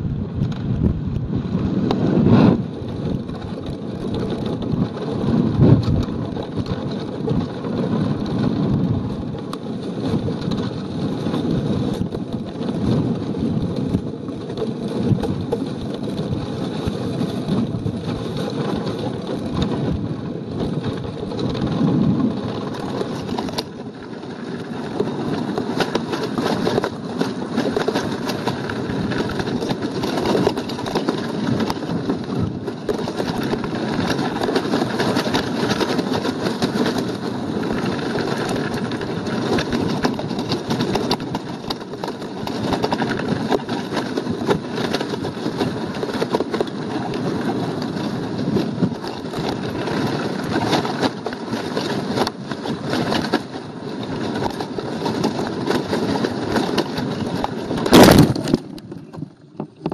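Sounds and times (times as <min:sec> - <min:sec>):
wind buffeting microphone: 0:00.0 - 0:59.9.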